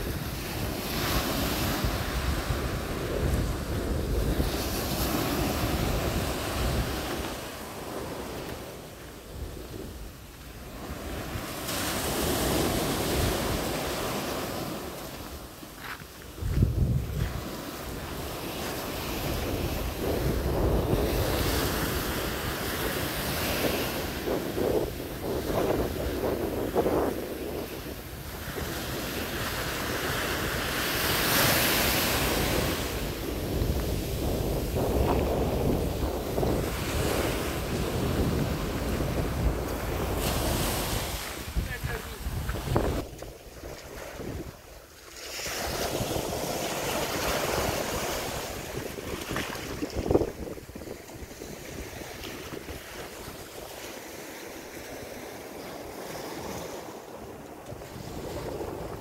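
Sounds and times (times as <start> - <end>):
waves breaking on beach: 0.0 - 59.0
wind noise on microphone: 0.0 - 59.0.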